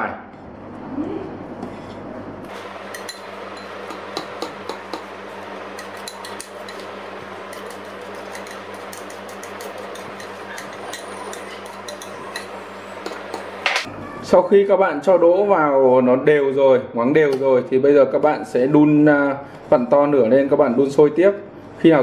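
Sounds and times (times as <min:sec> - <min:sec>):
steady background hum: 0:00.0 - 0:14.3
metal spoon clinking in pot: 0:02.9 - 0:13.6.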